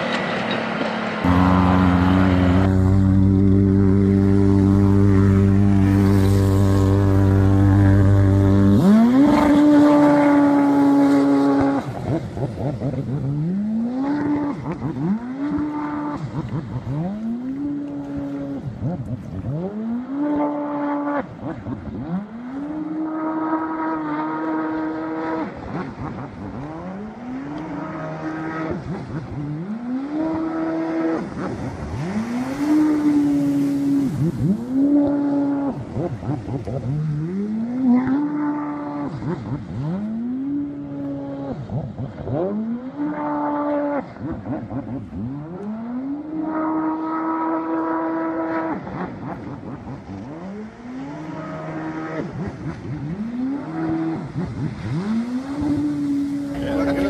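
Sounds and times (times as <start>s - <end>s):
high-revving engine accelerating: 0.0s - 57.0s.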